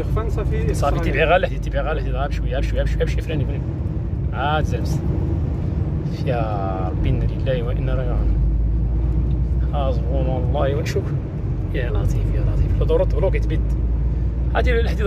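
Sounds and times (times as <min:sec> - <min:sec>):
vehicle cabin rumble: 0:00.0 - 0:15.0.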